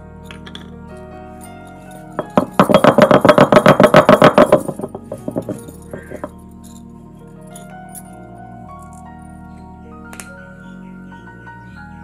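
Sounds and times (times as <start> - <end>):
stone roller knocking on stone slab: 2.2 - 6.3.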